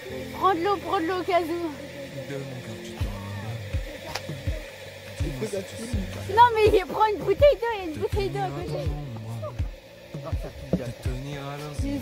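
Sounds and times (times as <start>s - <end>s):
background music with held low notes: 0.0s - 12.0s
steady low drum beat: 3.0s - 12.0s.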